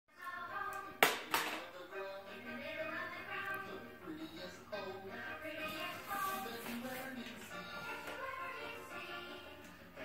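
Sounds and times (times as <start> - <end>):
television singing: 0.1 - 10.0.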